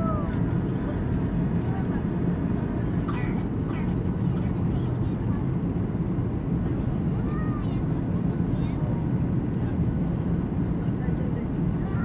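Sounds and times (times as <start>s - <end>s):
faint voices: 0.0s - 12.0s
jet engine rumble: 0.0s - 12.0s.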